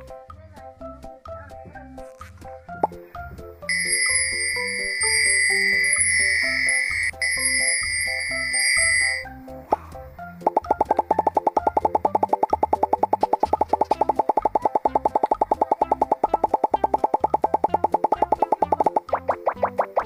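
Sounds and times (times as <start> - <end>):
light cartoon music: 0.0 - 20.0
rapid cartoon pop sounds: 9.7 - 20.0.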